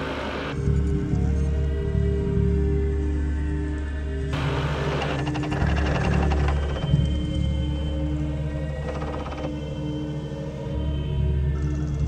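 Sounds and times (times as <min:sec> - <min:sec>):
dark electronic drone: 0:00.0 - 0:12.0.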